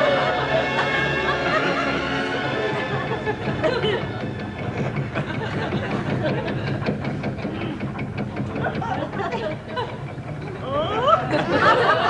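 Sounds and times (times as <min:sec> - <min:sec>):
indistinct voices: 0:00.0 - 0:12.0
quick ticking: 0:03.4 - 0:10.9.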